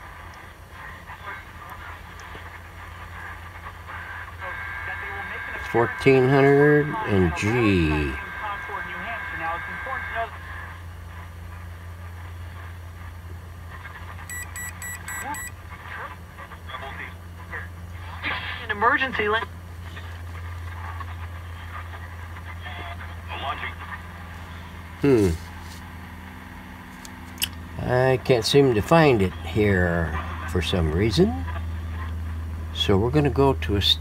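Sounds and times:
radio broadcast voices: 0:00.0 - 0:25.8, 0:27.6 - 0:34.0
steady low hum: 0:00.0 - 0:34.0
short beeps: 0:14.3 - 0:15.6.

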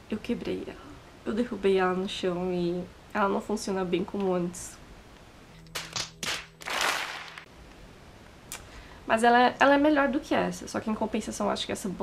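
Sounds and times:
faint steady hum: 0:00.0 - 0:05.9, 0:06.8 - 0:12.0
sharp cracks: 0:05.6 - 0:07.5.

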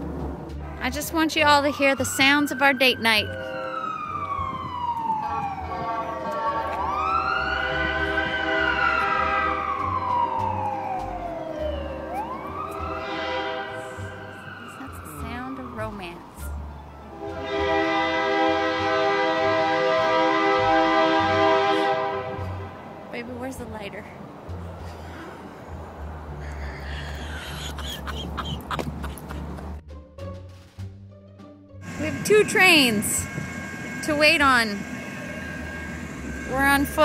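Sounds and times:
emergency vehicle siren wailing: 0:00.8 - 0:22.7, 0:25.7 - 0:29.4, 0:31.8 - 0:37.0
loud steady held chord: 0:05.5 - 0:10.0, 0:31.8 - 0:37.0.

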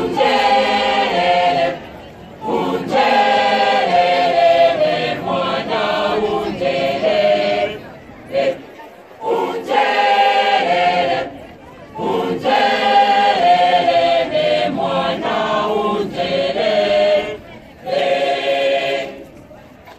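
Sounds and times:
choir singing unaccompanied: 0:00.0 - 0:19.5.

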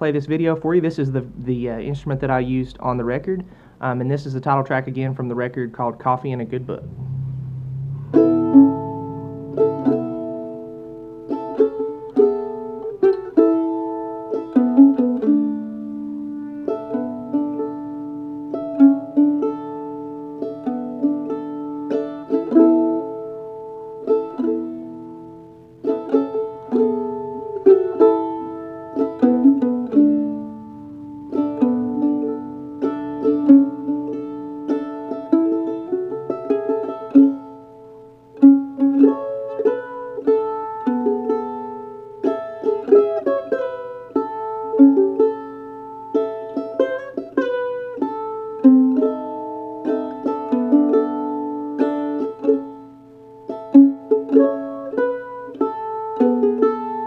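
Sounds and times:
mandolin picking melody: 0:00.0 - 0:57.0.

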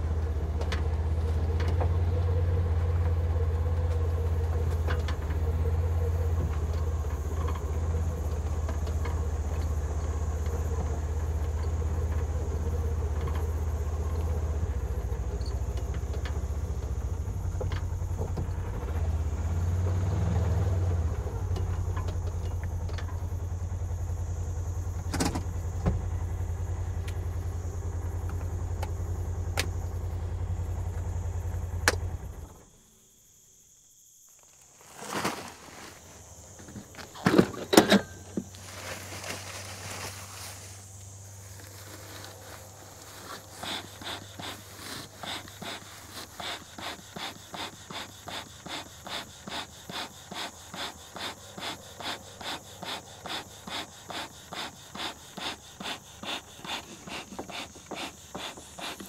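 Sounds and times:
vehicle engine humming: 0:00.0 - 0:33.1, 0:35.1 - 0:59.0.

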